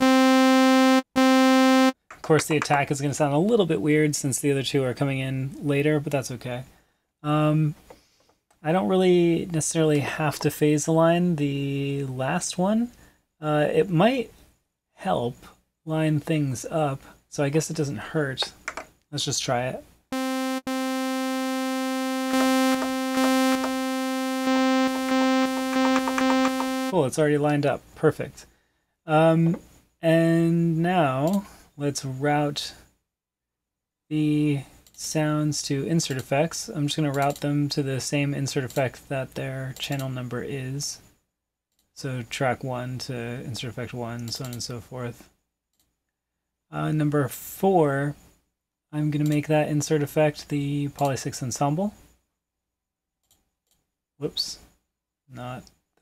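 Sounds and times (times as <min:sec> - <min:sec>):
synthesizer sustained note: 0:00.0 - 0:02.0, 0:20.2 - 0:27.0.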